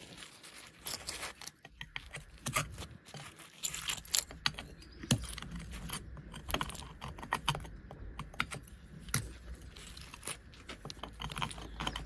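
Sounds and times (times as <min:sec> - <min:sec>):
concrete fragments clinking and scraping: 0:00.0 - 0:08.3, 0:09.0 - 0:12.0.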